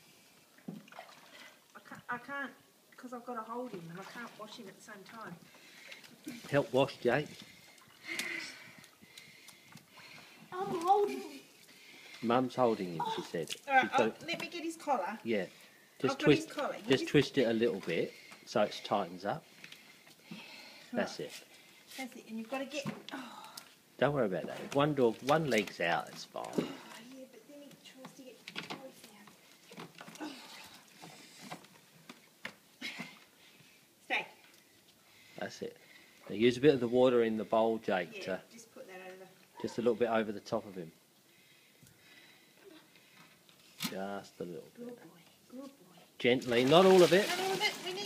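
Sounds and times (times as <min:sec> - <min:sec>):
water splashing and sloshing: 0:00.2 - 0:02.2, 0:03.3 - 0:36.8, 0:46.1 - 0:48.0
person exclaiming: 0:13.0 - 0:13.4.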